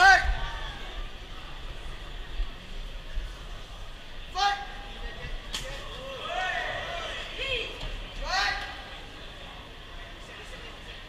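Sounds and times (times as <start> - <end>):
people shouting drawn-out calls: 0.0 - 0.9
crowd hum: 0.0 - 11.0.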